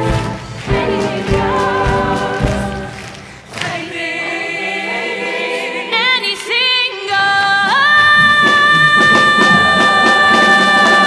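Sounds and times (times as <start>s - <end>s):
musical chorus singing with accompaniment: 0.0s - 11.0s.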